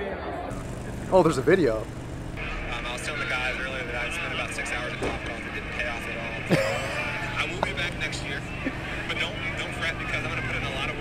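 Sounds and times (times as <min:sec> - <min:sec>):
low hum: 0:00.5 - 0:11.0
faint talk: 0:02.4 - 0:11.0
man laughing: 0:06.4 - 0:09.1.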